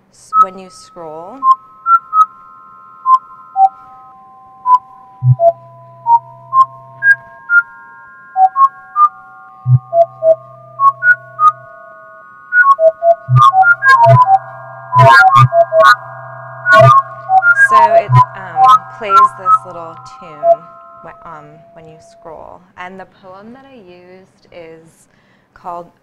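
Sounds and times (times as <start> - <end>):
low hum: 0.9 - 22.5
synthesized electronic tones: 1.2 - 22.4.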